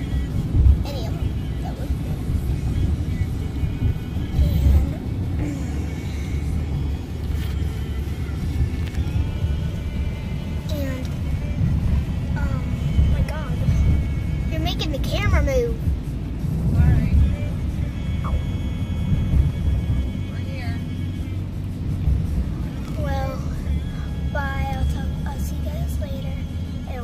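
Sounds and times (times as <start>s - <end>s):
car road and engine rumble: 0.0s - 27.0s
music playing quietly: 0.0s - 27.0s.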